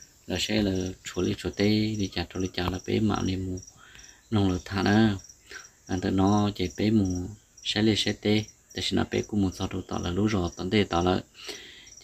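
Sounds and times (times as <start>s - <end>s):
man talking: 0.3s - 11.8s.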